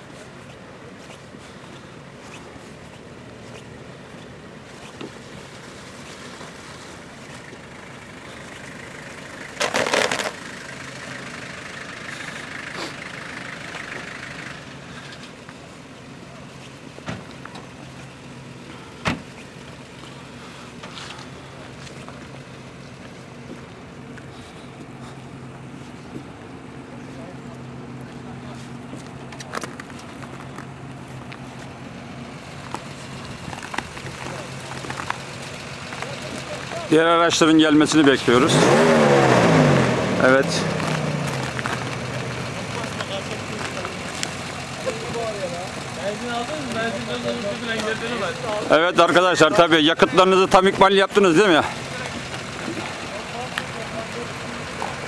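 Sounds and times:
off-road engines idling: 0.0 - 55.0.

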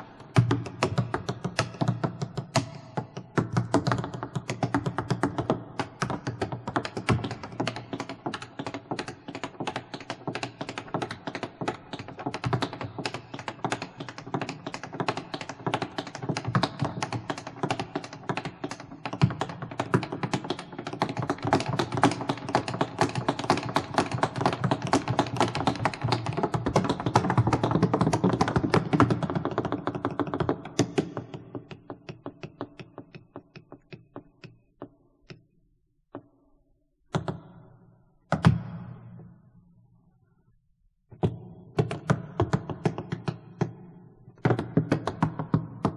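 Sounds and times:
tap shoes on wooden stage: 0.2 - 35.0, 41.2 - 45.9.

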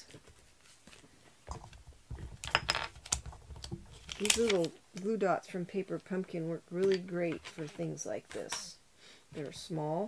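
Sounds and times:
plastic sheet clicking: 2.4 - 5.1.

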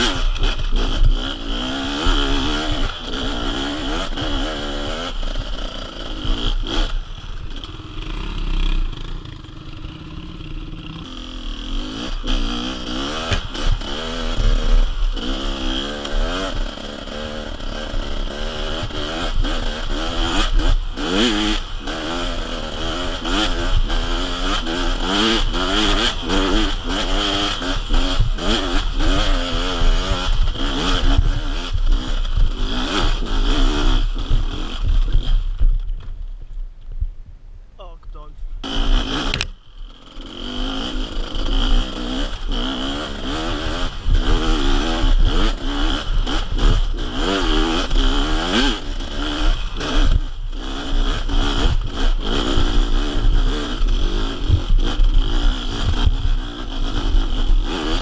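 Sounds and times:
two-stroke motorcycle engine revving: 0.0 - 36.0, 37.8 - 58.0.

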